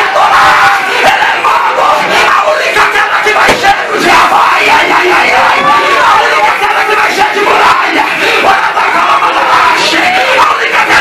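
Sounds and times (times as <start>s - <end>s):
congregation crying out: 0.0s - 11.0s.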